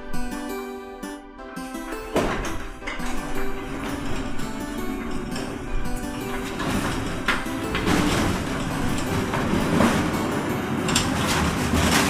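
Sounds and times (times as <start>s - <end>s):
steel gate rattling and rumbling: 1.7s - 12.0s
car rolling in: 1.8s - 12.0s.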